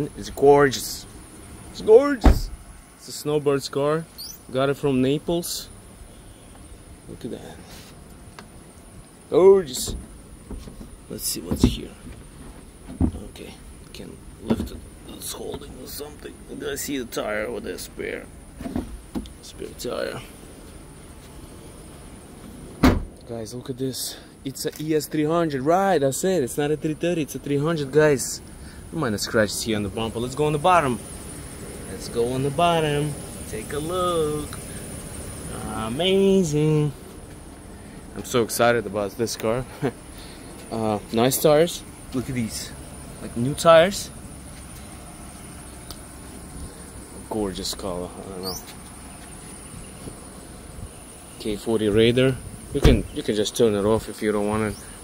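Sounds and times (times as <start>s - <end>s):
car trunk lid thump: 2.2s - 2.7s, 9.8s - 11.9s, 22.8s - 23.2s, 52.8s - 53.2s.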